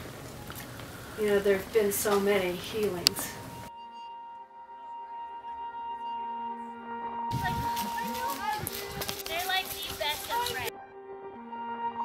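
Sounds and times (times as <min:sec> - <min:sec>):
soft ambient music: 0:00.0 - 0:12.0.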